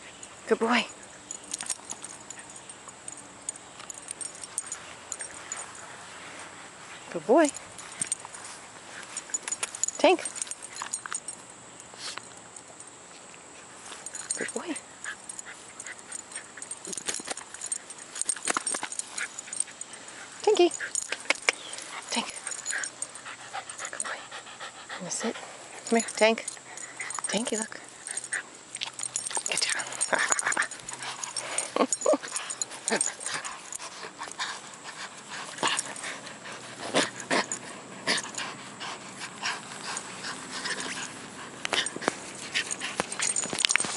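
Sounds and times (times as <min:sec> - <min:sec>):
scuffling and rustling: 0:25.0 - 0:43.9
dog whimpering: 0:31.2 - 0:33.3.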